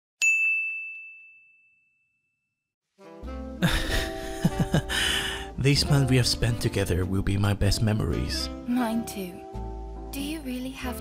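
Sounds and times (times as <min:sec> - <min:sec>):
bright bell ding: 0:00.2 - 0:02.4.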